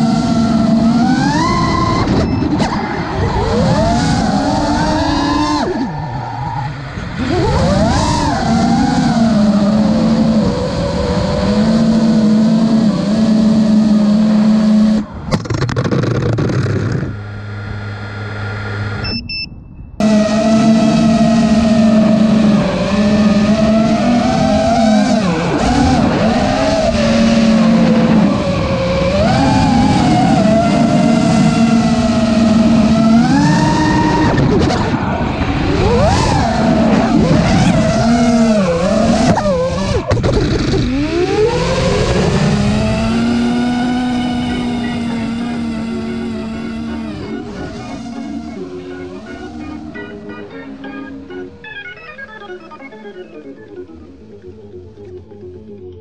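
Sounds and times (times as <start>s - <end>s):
drone motors whining: 0.0s - 56.0s
short high beep: 19.0s - 20.2s.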